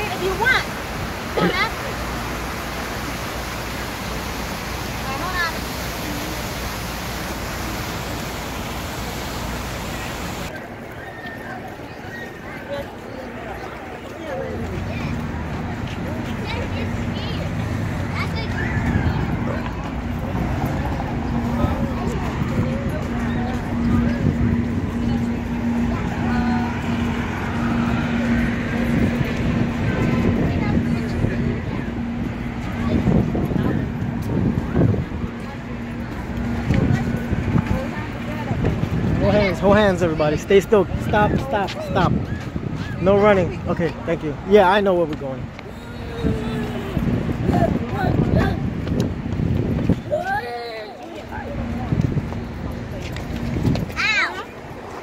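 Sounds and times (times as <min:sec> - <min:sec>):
traffic rumble: 0:00.0 - 0:55.0
wind buffeting microphone: 0:14.6 - 0:55.0.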